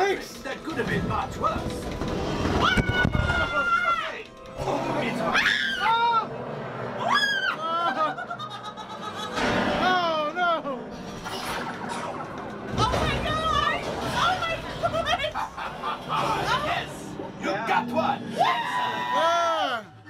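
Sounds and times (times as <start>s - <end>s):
people whooping and laughing: 7.0s - 9.4s, 18.3s - 19.9s.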